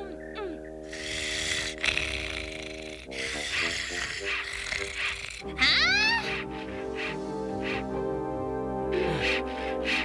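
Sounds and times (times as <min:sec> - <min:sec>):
background music of held chords: 0:00.0 - 0:10.0.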